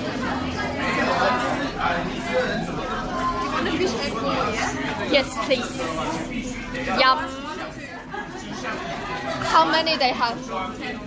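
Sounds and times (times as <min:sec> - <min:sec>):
background chatter: 0:00.0 - 0:11.0
people talking: 0:00.0 - 0:11.0.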